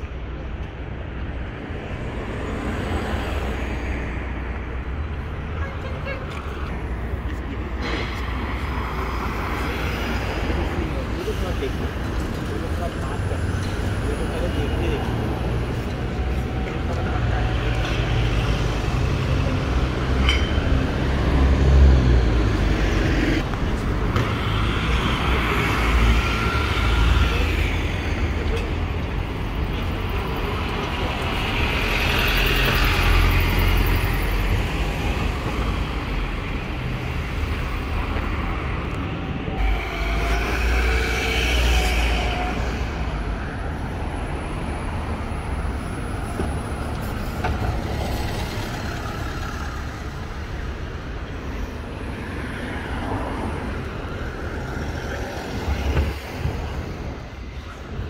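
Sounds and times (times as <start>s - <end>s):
heavy engines rumbling: 0.0s - 58.0s
tyres on road: 0.0s - 58.0s.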